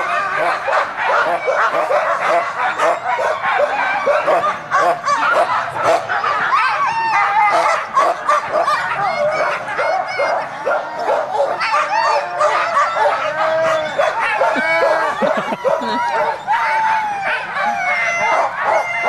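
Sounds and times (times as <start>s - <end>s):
sled dogs barking: 0.0s - 19.0s.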